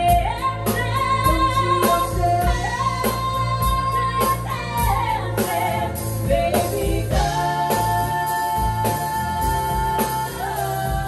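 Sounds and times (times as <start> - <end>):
live band drums and bass: 0.0 - 11.0
women singing in harmony: 0.0 - 11.0.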